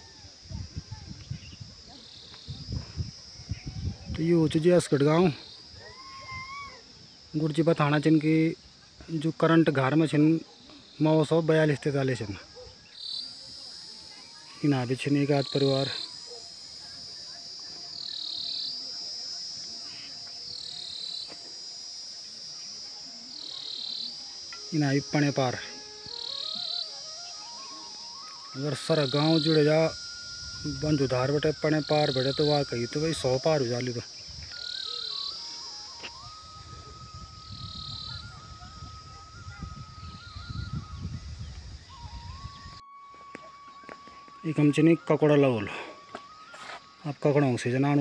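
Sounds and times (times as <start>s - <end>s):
high-pitched insect buzzing: 0.0s - 48.0s.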